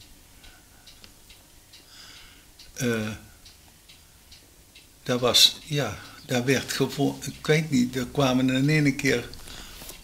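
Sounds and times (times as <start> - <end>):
faint steady ticking: 0.0 - 10.0.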